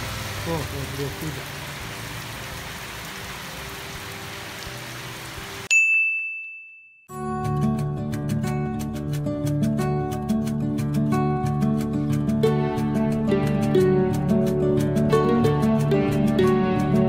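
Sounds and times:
heavy rain: 0.0s - 5.7s
plucked guitar music: 7.2s - 17.0s.

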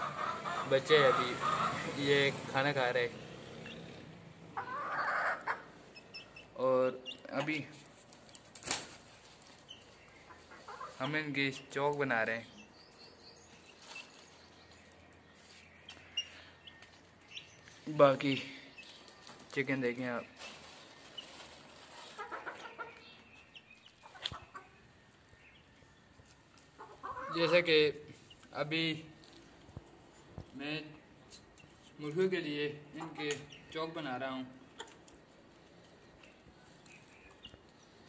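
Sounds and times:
young chickens clucking and peeping: 0.0s - 2.5s, 3.5s - 28.6s, 29.2s - 38.0s.

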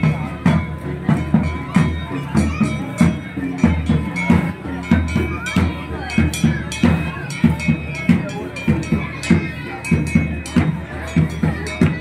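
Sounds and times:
drum beating with metallic clank: 0.0s - 12.0s
voices: 0.0s - 12.0s.

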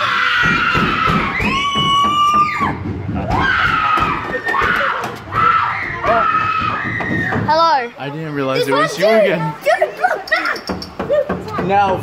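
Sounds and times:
people screaming in fright: 0.0s - 7.5s.

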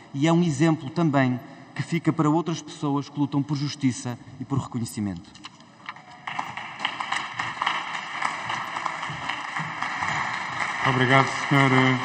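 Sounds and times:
many hands clapping: 6.1s - 12.0s.

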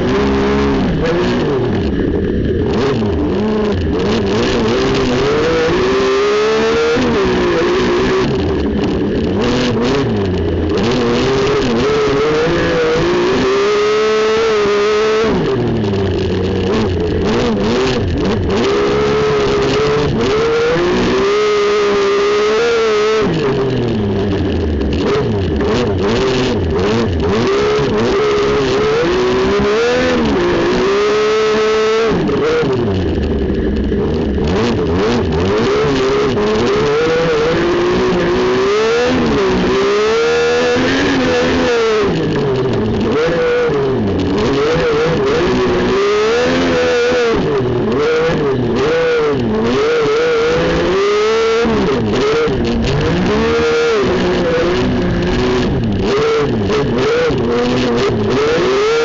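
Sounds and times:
race car engine revving: 0.0s - 59.0s.

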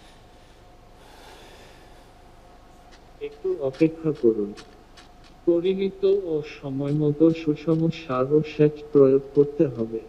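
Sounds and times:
breath into microphone: 0.0s - 2.3s
faint hum: 0.0s - 10.0s.

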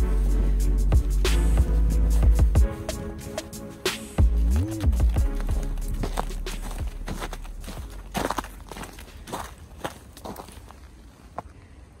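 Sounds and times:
footsteps crunching on snow: 1.4s - 11.5s.

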